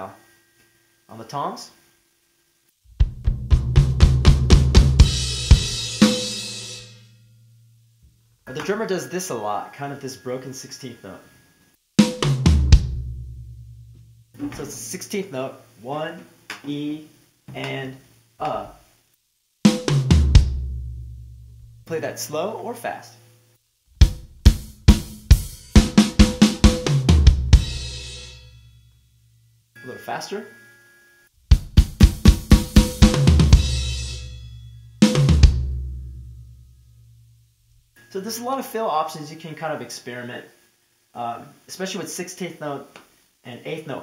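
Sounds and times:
drum kit fill on snare and toms: 0:03.0 - 0:07.0, 0:12.0 - 0:13.1, 0:19.7 - 0:20.7, 0:24.0 - 0:28.4, 0:31.5 - 0:35.7
cymbal crash: 0:05.0 - 0:07.7, 0:32.0 - 0:35.7.

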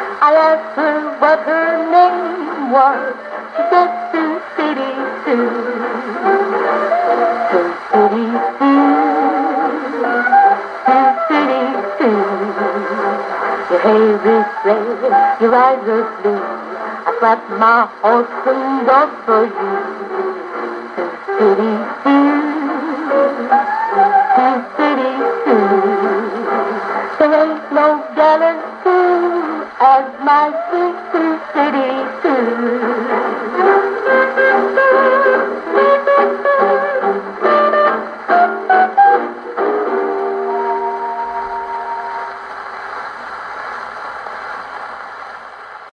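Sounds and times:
hawaiian band music on gramophone: 0:00.0 - 0:42.7
record surface hiss: 0:00.0 - 0:45.9
plucked string band music: 0:30.3 - 0:42.4.

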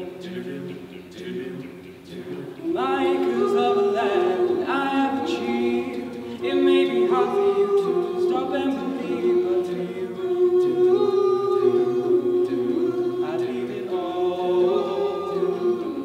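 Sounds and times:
backing vocal harmonies: 0:00.0 - 0:16.0.

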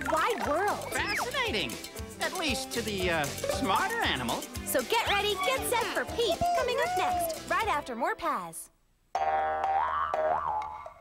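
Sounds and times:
springy boing sound effect: 0:09.2 - 0:11.0.

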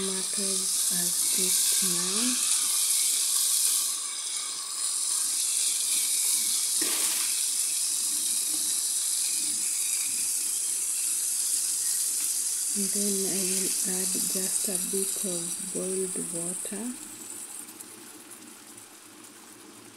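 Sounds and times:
food sizzling in a frying pan: 0:00.0 - 0:19.9.

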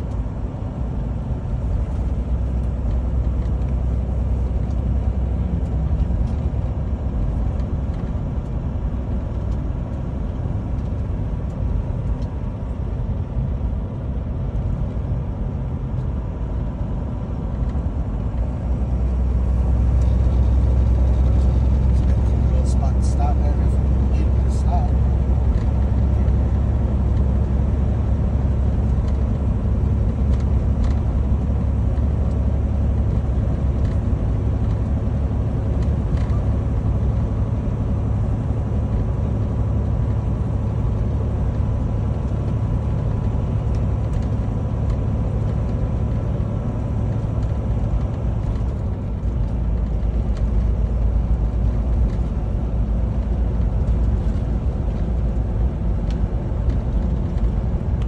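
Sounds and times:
truck engine and road rumble: 0:00.0 - 0:58.0.

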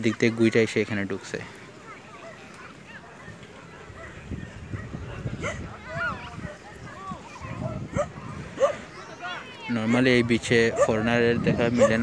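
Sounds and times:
dogs yipping and barking: 0:02.1 - 0:09.0, 0:09.9 - 0:12.0.

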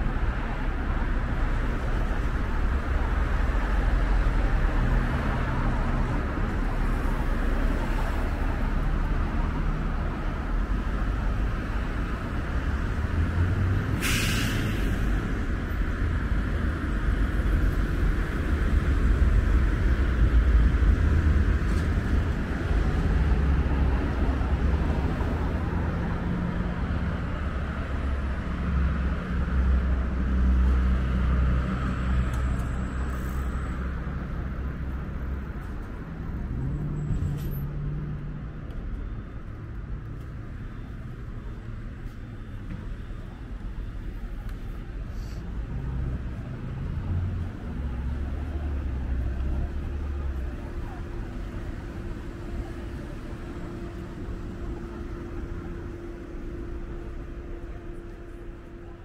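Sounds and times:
road traffic passing: 0:00.0 - 0:59.0
air brakes hissing: 0:13.9 - 0:15.2, 0:45.1 - 0:45.5.

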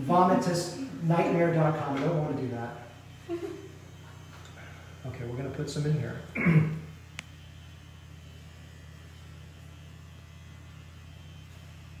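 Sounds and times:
vibration device humming: 0:00.0 - 0:12.0.

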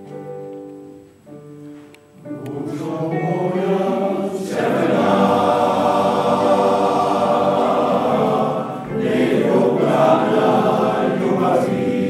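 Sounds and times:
male voice choir singing: 0:02.3 - 0:12.0.

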